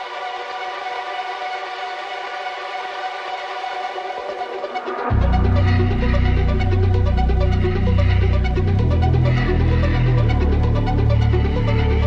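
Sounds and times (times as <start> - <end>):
synth chord drone: 0.0 - 12.0.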